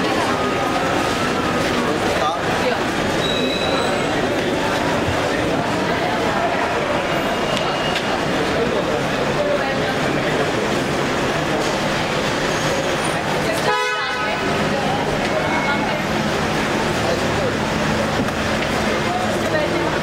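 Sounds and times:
crowd voices: 0.0 - 20.0
car horn honk: 13.6 - 14.5.

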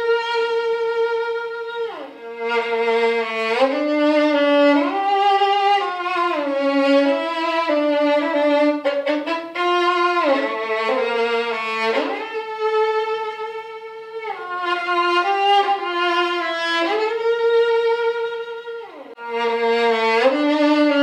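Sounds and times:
solo violin slow melody: 0.0 - 21.0.

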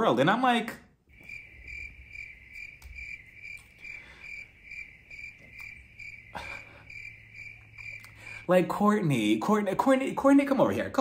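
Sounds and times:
crickets chirping: 1.0 - 10.7.

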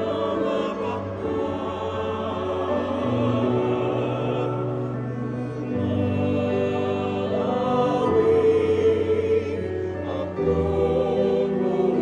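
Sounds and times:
mixed choir singing chords: 0.0 - 12.0.

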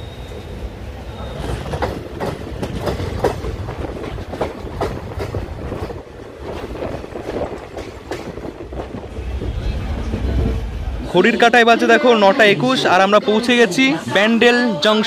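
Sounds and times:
train running gear rumble: 0.0 - 11.2
train wheels clacking: 1.2 - 10.6.

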